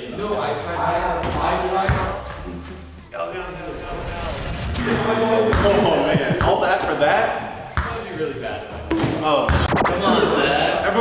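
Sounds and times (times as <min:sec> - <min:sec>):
young men's voices reacting: 0:05.0 - 0:07.4.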